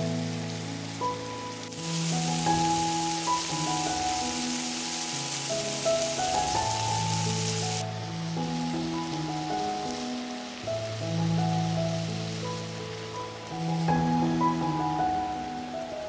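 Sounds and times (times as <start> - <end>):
food sizzling in a pan: 0.0 - 15.1
faint hiss: 0.0 - 16.0
slow background music: 0.0 - 16.0.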